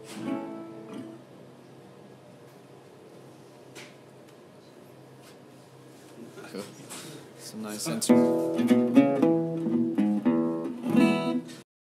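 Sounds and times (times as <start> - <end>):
acoustic guitar chords: 0.0 - 1.3, 7.9 - 11.6.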